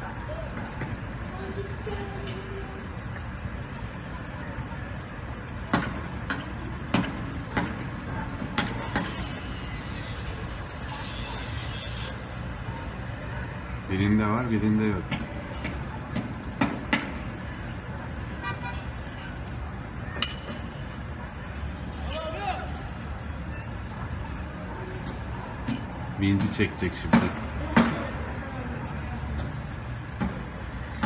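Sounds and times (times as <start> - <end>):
diesel engine rumbling: 0.0 - 31.0.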